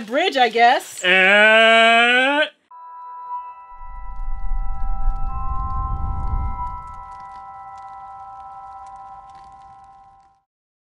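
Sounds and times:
music ending on ringing chord: 0:02.7 - 0:10.0.

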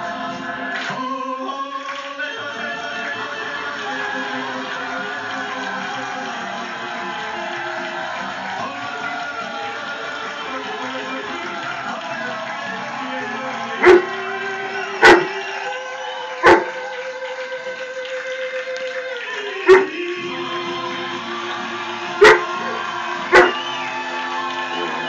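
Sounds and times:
music from a television: 0:00.0 - 0:25.0
dog barking: 0:13.8 - 0:14.1, 0:15.0 - 0:15.3, 0:16.4 - 0:16.8, 0:19.7 - 0:19.9, 0:22.2 - 0:23.6.

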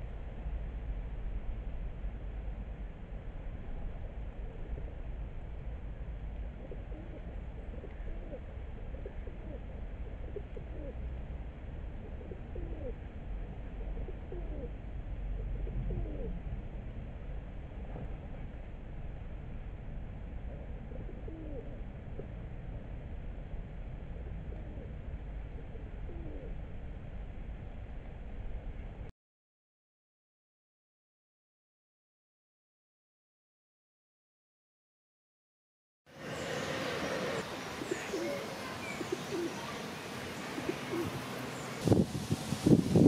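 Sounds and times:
steady low rumble: 0:00.0 - 0:29.1
pigeons cooing: 0:06.4 - 0:11.0, 0:11.9 - 0:16.5, 0:20.6 - 0:21.8, 0:24.6 - 0:26.6, 0:36.3 - 0:41.9
bird calls sliding in pitch: 0:36.2 - 0:41.9.

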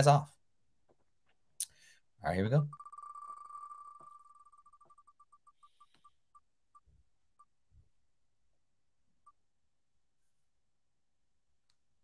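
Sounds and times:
spinner wheel ticking: 0:02.6 - 0:06.0.

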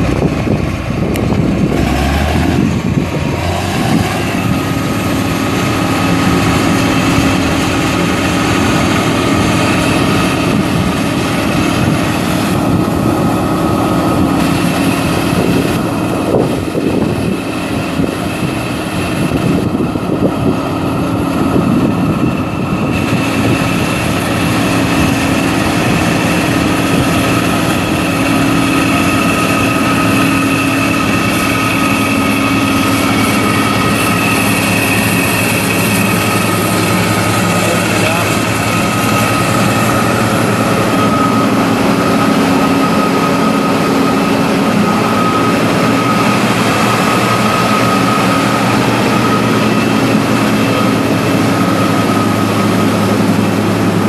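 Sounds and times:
diesel engine running: 0:00.0 - 0:54.0
steady whine: 0:00.0 - 0:54.0.

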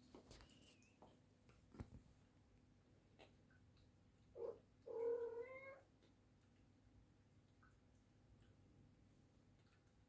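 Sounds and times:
cat meowing: 0:04.4 - 0:05.9.

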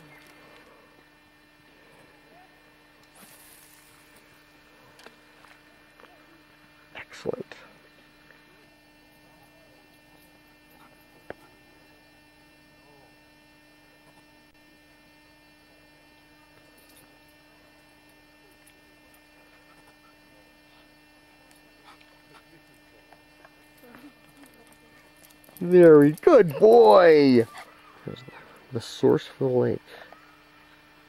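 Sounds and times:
faint electrical hum: 0:00.0 - 0:31.0.

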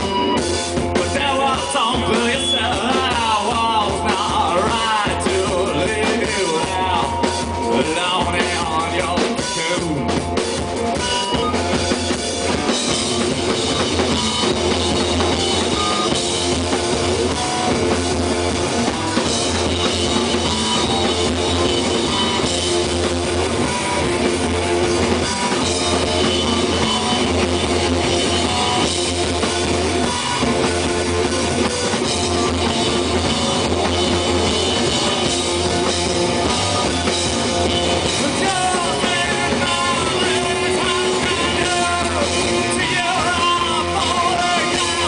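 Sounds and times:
distorted electric guitars: 0:00.0 - 0:45.0
drum kit with bass drum: 0:00.0 - 0:45.0.

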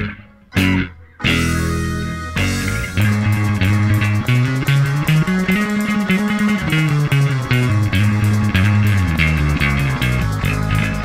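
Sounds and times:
electric bass plucked notes: 0:00.0 - 0:11.0.

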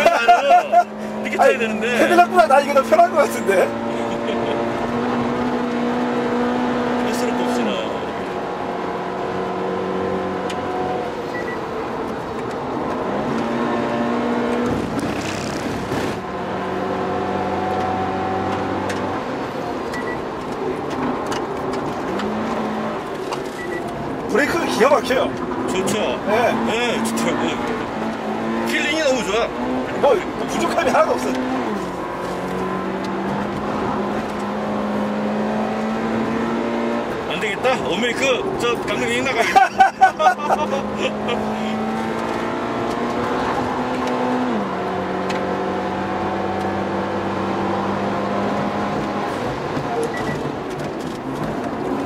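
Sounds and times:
car engine from inside cabin: 0:00.0 - 0:52.0.

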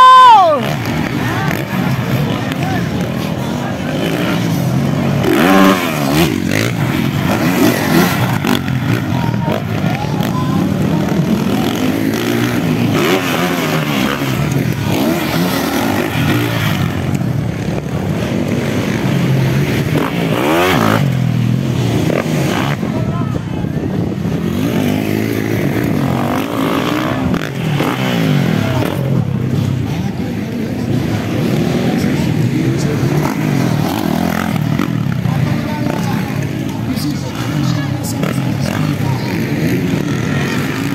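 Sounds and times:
dirt bike engines revving: 0:00.0 - 0:40.9.

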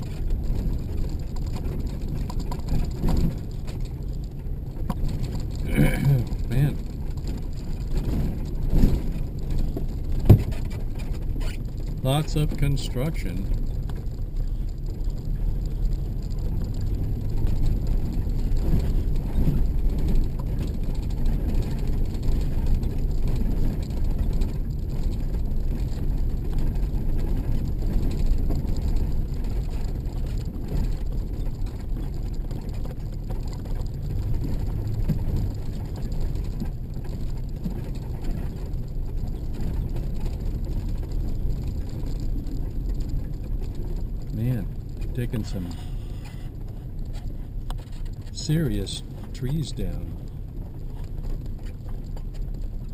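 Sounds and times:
tyre noise on gravel road: 0:00.0 - 0:52.9
vehicle engine running: 0:00.0 - 0:52.9.

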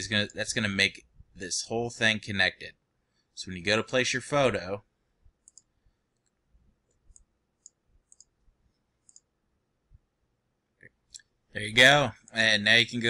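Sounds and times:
computer mouse clicks: 0:05.4 - 0:08.4, 0:09.0 - 0:09.3.

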